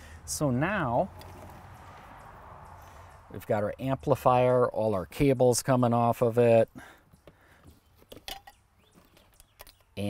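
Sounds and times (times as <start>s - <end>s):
clicks and knocks of handling: 7.2s - 9.9s.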